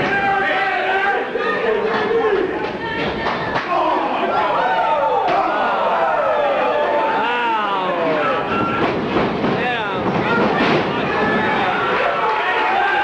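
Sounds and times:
crowd shouting and yelling: 0:00.0 - 0:13.0.

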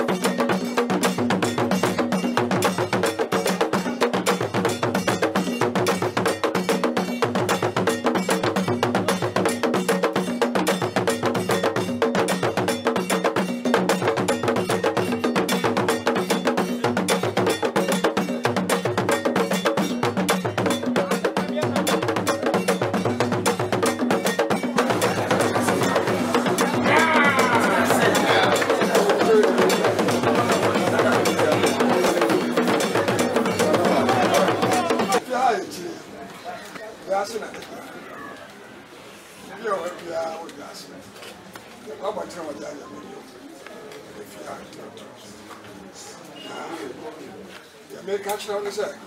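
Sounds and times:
metal bell struck rhythmically: 0:00.0 - 0:35.2
pitched drums: 0:00.0 - 0:35.8
many voices: 0:23.4 - 0:49.0.

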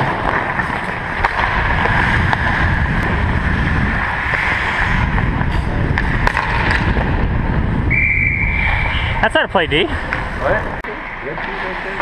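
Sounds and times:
rumbling wind noise: 0:00.0 - 0:10.8
referee's whistle blast: 0:07.9 - 0:09.1.

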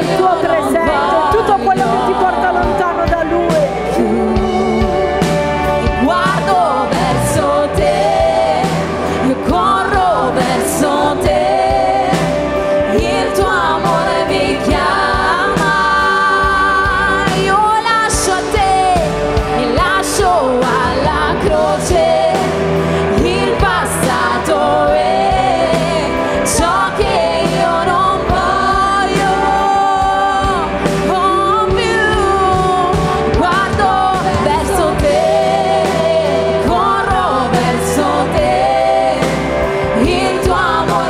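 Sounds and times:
women singing together: 0:00.0 - 0:03.1, 0:03.7 - 0:41.0
electric bass guitar: 0:00.0 - 0:41.0
keyboard: 0:00.0 - 0:41.0.

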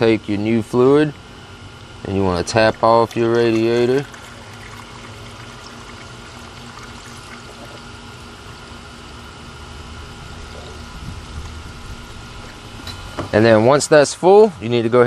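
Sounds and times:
liquid pouring through a funnel: 0:01.8 - 0:09.2.

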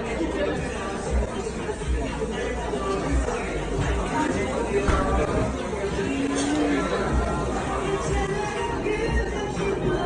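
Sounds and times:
indistinct chatter of people: 0:00.0 - 0:10.0.

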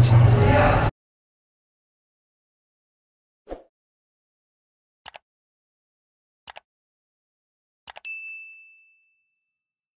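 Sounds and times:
notification bell ding: 0:08.0 - 0:09.6.

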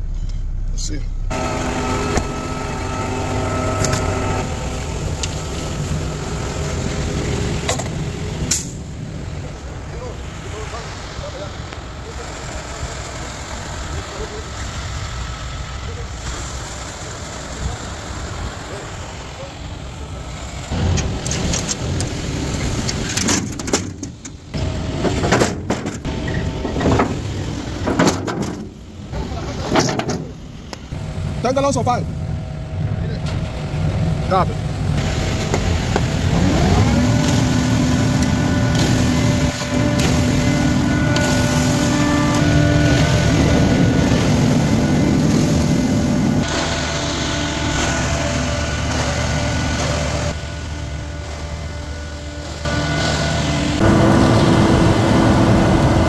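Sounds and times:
heavy truck engine running: 0:00.0 - 0:56.0.

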